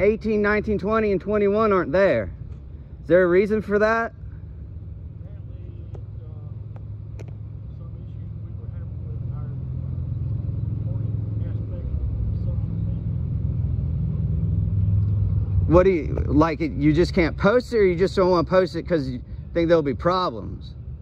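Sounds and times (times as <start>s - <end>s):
vehicle engine rumbling: 0.0s - 21.0s.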